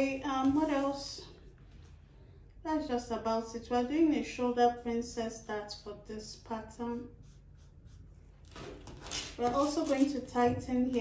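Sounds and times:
marker scratching on paper: 4.0 - 5.8, 6.6 - 8.3
paper rustling: 8.4 - 11.0.

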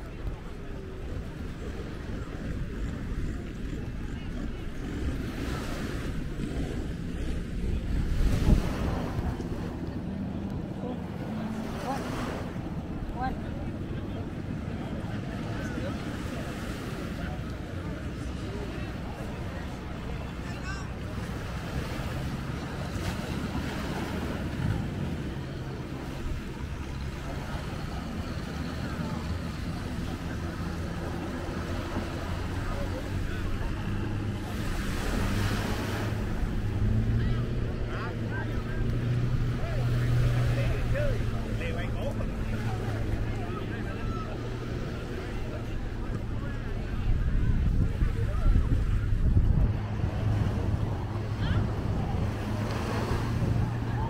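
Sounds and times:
wind on microphone: 0.0 - 11.6, 44.3 - 54.0
boat engine humming: 0.0 - 54.0
distant voices: 0.0 - 54.0
surf washing: 0.0 - 54.0.

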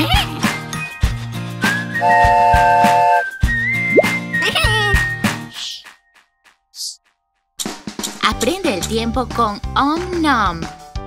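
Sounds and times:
children's background music: 0.0 - 2.2, 3.4 - 11.0
cartoon train whistle: 2.0 - 3.4.

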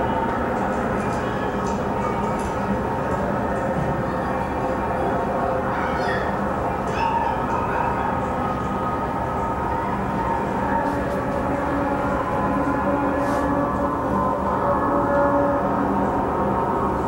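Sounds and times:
low drone with held tones: 0.0 - 17.0.

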